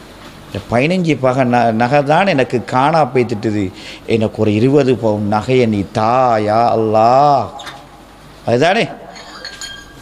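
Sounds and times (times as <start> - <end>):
faint high clinking tones: 9.1 - 10.0.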